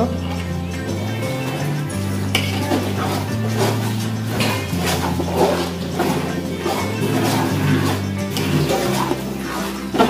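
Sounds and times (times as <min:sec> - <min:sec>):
background music: 0:00.0 - 0:10.0
spoon scraping metal pot: 0:00.5 - 0:10.0.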